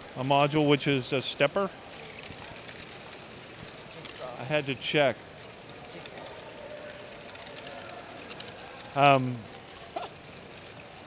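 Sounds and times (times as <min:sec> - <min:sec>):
faint motor whine: 0:00.0 - 0:11.0
hall background noise: 0:00.0 - 0:11.0
plastic balls ticking on track: 0:00.1 - 0:11.0.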